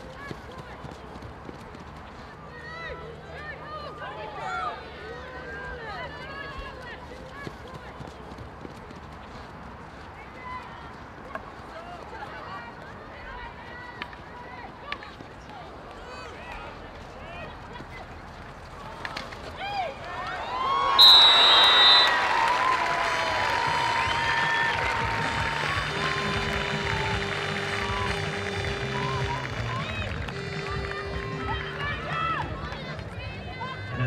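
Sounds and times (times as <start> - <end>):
stadium crowd cheering: 19.0 - 34.0
short high whistle blast: 21.0 - 22.3.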